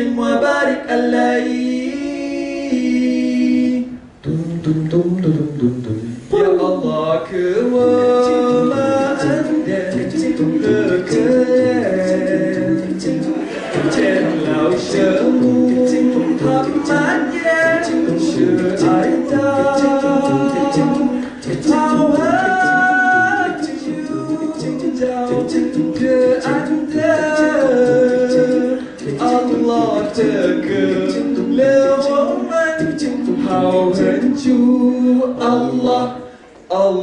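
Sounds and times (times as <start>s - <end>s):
male a cappella group singing: 0.0s - 5.6s, 6.4s - 37.0s.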